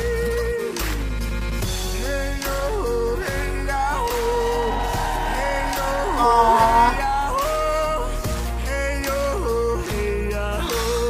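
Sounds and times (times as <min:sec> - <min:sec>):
band accompaniment: 0:00.8 - 0:11.0
woman singing: 0:05.8 - 0:08.1.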